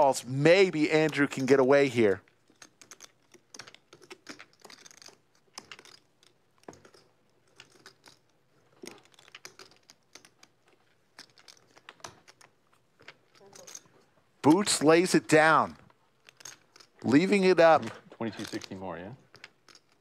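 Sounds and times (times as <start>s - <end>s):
poker chips clicking: 0.0s - 20.0s.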